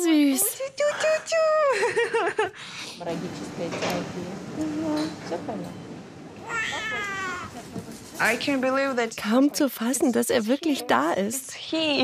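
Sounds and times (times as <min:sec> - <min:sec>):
newborn baby crying: 0:06.4 - 0:07.6.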